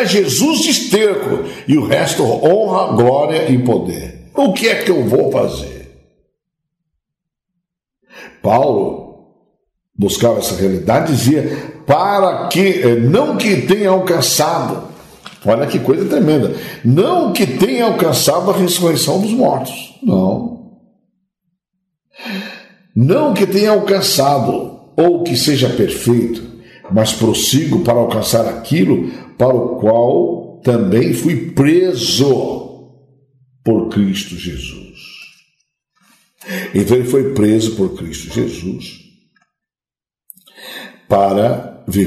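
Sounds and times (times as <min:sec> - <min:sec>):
man speaking: 0:00.0 - 0:05.9, 0:08.2 - 0:09.0, 0:10.0 - 0:20.6, 0:22.2 - 0:32.7, 0:33.6 - 0:35.3, 0:36.4 - 0:39.0, 0:40.4 - 0:42.0
man breathing in: 0:22.2 - 0:22.9, 0:36.0 - 0:36.8, 0:40.4 - 0:41.1
mouth click: 0:40.3 - 0:40.6.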